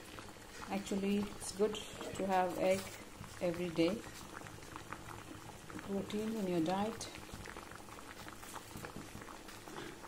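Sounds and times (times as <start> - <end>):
water boiling in a pot: 0.0 - 10.0.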